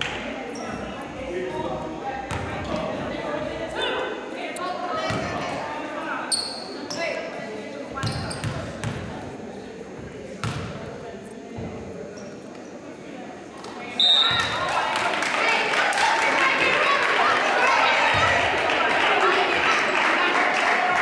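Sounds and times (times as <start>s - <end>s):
echoing voices: 0.0s - 21.0s.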